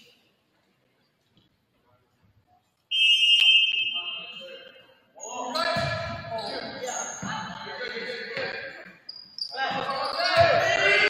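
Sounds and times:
referee's whistle blast: 0:02.9 - 0:04.5.

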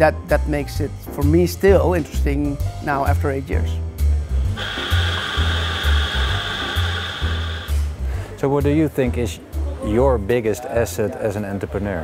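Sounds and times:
background music with bass: 0:00.0 - 0:12.0
steam wand hissing: 0:04.6 - 0:08.0.

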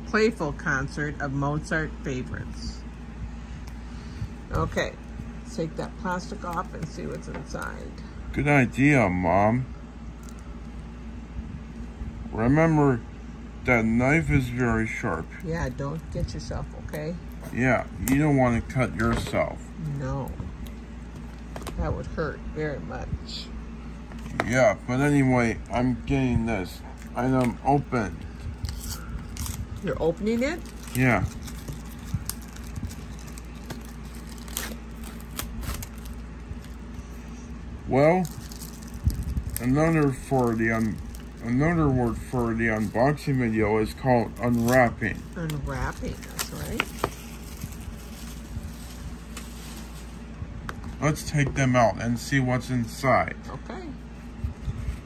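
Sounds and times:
low hum: 0:00.0 - 0:55.0
plastic wrap crinkling and tearing: 0:27.0 - 0:37.3, 0:37.9 - 0:50.3
knife scratching plastic wrap: 0:28.6 - 0:36.7.

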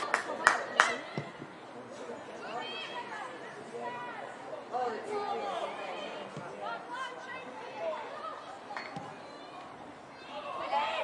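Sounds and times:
voices chattering and calling: 0:00.0 - 0:11.0.

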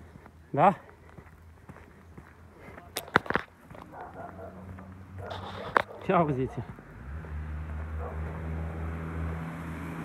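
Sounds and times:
footsteps on dirt: 0:00.0 - 0:08.5.

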